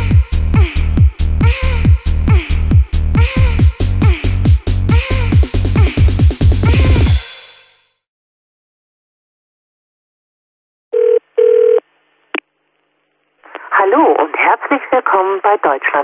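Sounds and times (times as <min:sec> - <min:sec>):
telephone beeps: 0:11.0 - 0:11.8
voice through telephone: 0:13.5 - 0:16.0.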